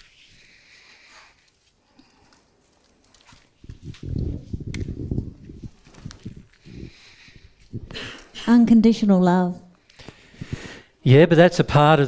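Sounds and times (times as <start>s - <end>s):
microphone handling thumps: 3.6s - 8.0s.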